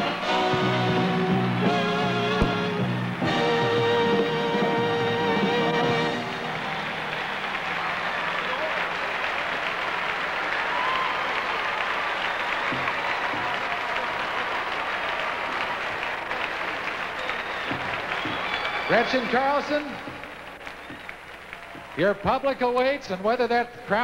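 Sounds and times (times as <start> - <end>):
people cheering: 0.9 - 22.8
audience applauding: 5.4 - 22.7.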